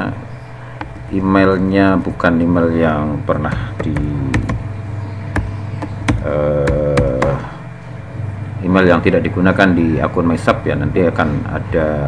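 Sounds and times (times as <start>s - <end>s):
constant low hum: 0.0s - 12.0s
keyboard keystrokes: 3.4s - 4.6s
voice holding a steady tone: 6.2s - 7.7s.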